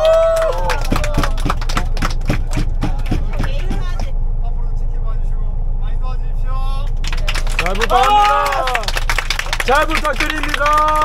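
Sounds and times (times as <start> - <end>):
bus engine low rumble: 0.0 - 11.0.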